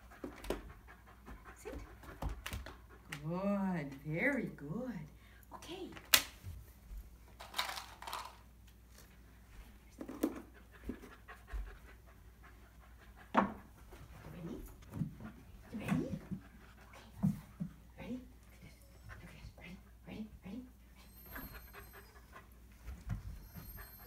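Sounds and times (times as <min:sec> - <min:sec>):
puppy panting: 0:00.0 - 0:03.2, 0:10.4 - 0:17.9, 0:21.0 - 0:24.0.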